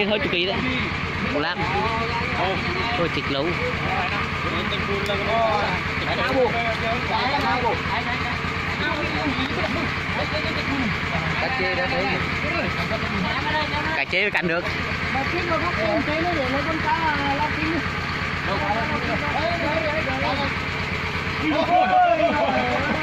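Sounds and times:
diesel engine running: 0:00.0 - 0:23.0
people's voices: 0:00.0 - 0:23.0.

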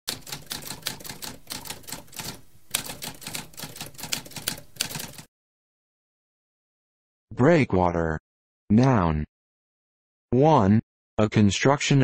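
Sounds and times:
typewriter keys typing: 0:00.1 - 0:05.3.

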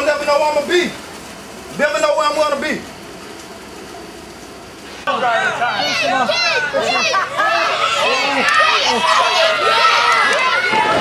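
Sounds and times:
outdoor ambience hiss and rumble: 0:00.0 - 0:11.0.

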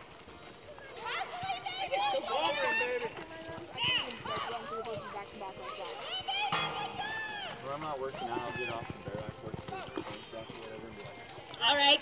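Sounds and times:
horse hoofbeats galloping on dirt: 0:00.0 - 0:12.0
onlookers' voices: 0:00.0 - 0:12.0.

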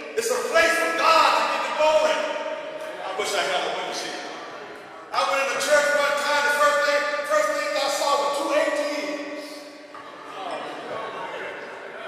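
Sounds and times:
faint reverberant man's voice: 0:00.0 - 0:12.0.

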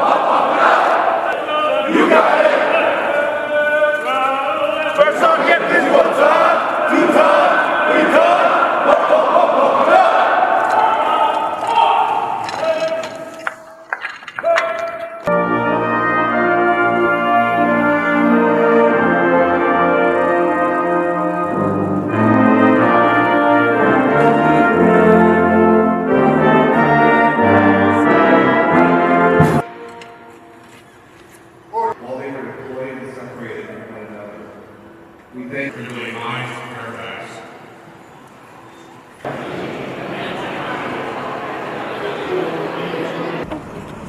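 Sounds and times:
soldiers singing together: 0:00.0 - 0:12.0
brass band playing slow music: 0:15.3 - 0:30.6.

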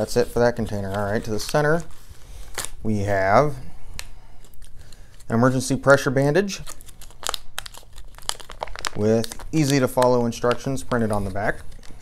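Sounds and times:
plastic packaging crinkling: 0:00.0 - 0:02.8, 0:04.0 - 0:12.0.

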